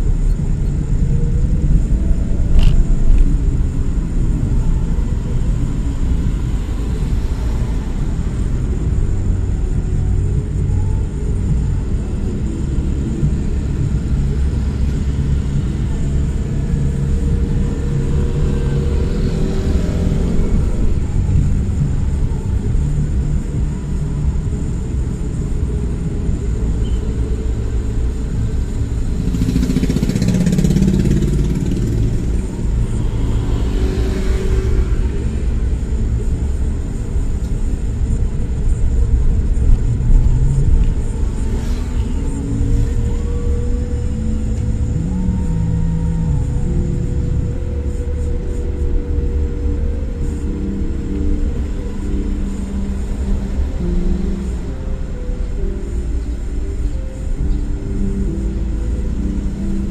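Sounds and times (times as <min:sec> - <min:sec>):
motorcycles in traffic: 0:00.0 - 0:59.9
vehicle driving rumble: 0:00.0 - 0:59.9.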